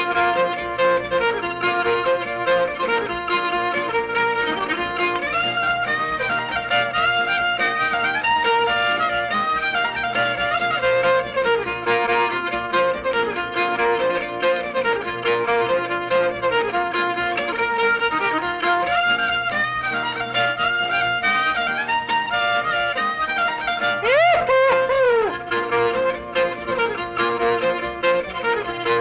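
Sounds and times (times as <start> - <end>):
fiddle tune with guitar: 0.0 - 29.0.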